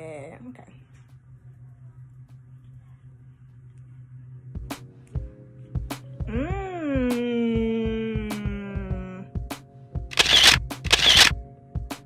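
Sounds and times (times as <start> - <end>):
background music with steady beat: 4.4 - 12.0
camera shutter sound effects: 10.1 - 11.4.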